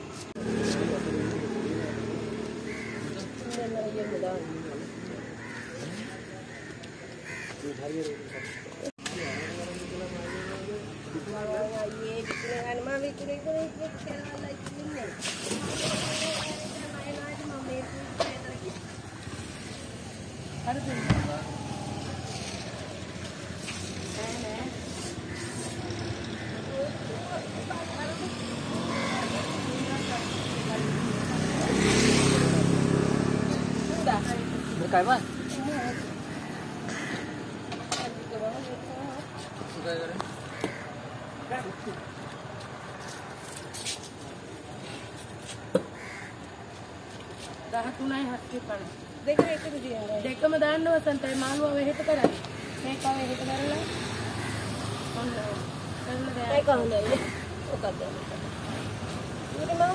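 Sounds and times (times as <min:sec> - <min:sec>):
small vehicle engine passing: 0:00.3 - 0:03.8, 0:19.2 - 0:37.6
crows cawing: 0:01.2 - 0:10.9, 0:12.0 - 0:13.0, 0:20.6 - 0:23.8, 0:25.1 - 0:26.9, 0:28.6 - 0:30.4, 0:35.7 - 0:38.0, 0:40.4 - 0:41.1, 0:45.8 - 0:46.8, 0:51.8 - 0:53.2, 0:53.8 - 0:55.4, 0:57.0 - 0:58.0.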